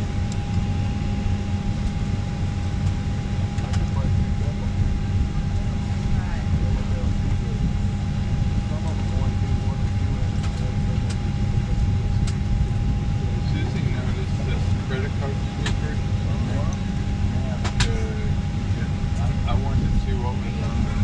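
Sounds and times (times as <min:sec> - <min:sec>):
aircraft cabin drone: 0:00.0 - 0:21.0
passengers talking faintly: 0:00.0 - 0:21.0.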